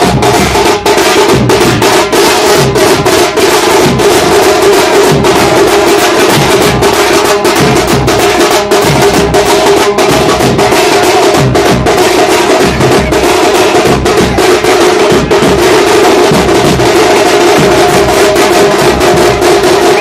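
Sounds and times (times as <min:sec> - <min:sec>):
drums playing fast rhythm: 0:00.0 - 0:20.0.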